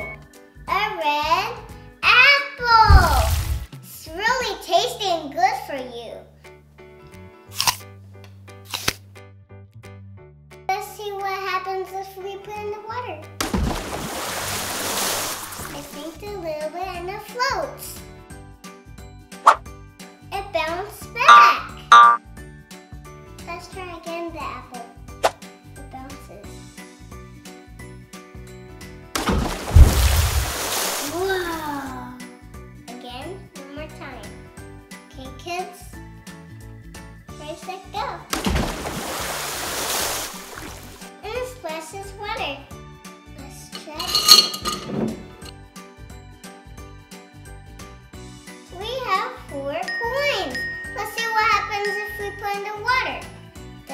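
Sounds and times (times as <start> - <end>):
children's music with steady beat: 0.0 - 4.5, 15.9 - 29.2, 31.1 - 38.3, 41.0 - 53.9
apple plopping in water: 2.8 - 3.7, 13.4 - 16.0, 29.2 - 31.6, 38.3 - 41.1
coins clinking in glass jar: 43.8 - 45.0.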